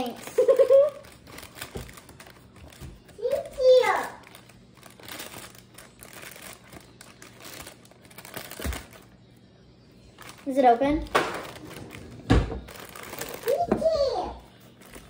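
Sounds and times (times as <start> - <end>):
plastic bag crinkling: 0.0 - 9.2, 10.1 - 13.7, 14.6 - 15.0.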